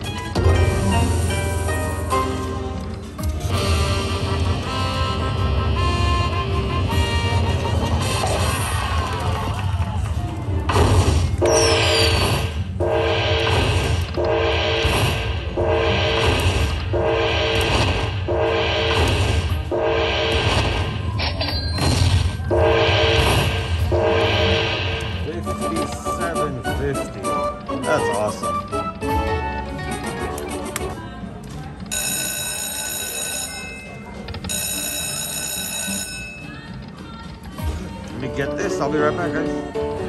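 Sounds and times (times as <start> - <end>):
slot machine electronic music: 0.0 - 9.0, 10.7 - 31.0, 31.7 - 37.0.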